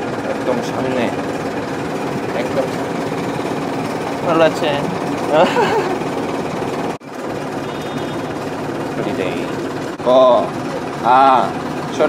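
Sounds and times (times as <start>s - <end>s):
bus engine droning with rattle: 0.0s - 12.0s.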